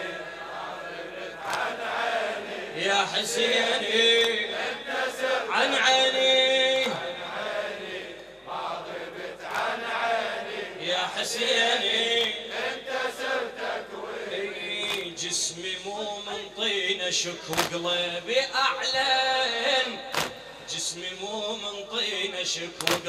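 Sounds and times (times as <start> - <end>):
crowd of men chanting: 0.0 - 23.0
rhythmic chest-beating slaps: 0.5 - 2.6, 4.0 - 5.4, 6.8 - 7.2, 8.1 - 10.1, 12.1 - 13.7, 14.8 - 15.2, 17.4 - 18.0, 20.0 - 20.7, 22.7 - 23.0.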